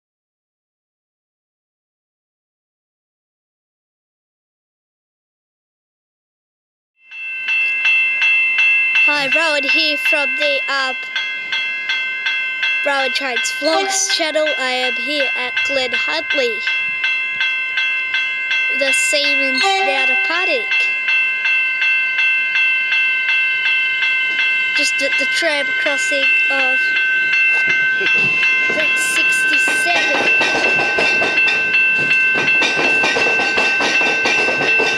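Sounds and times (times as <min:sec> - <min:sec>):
level crossing warning bell: 0:07.1 - 0:34.9.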